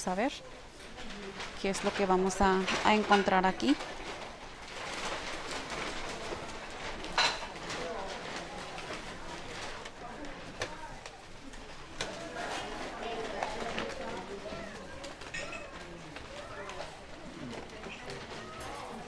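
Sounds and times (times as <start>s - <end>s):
background chatter of people: 0.0s - 19.0s.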